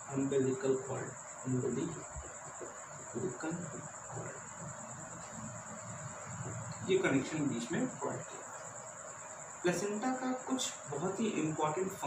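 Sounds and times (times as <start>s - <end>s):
high-pitched insect trill: 0.0s - 12.0s.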